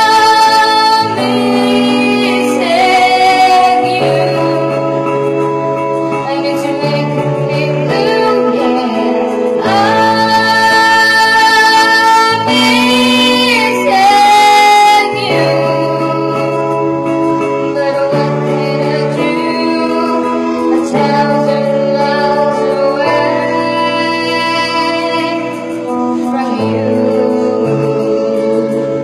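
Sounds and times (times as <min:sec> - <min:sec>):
instrumental backing music: 0:00.0 - 0:29.0
woman singing into microphone: 0:00.0 - 0:29.0.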